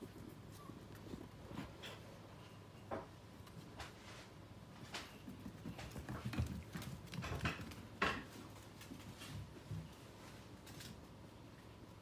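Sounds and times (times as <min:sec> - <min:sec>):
puppy paws scrabbling on wood floor: 0:00.0 - 0:11.2.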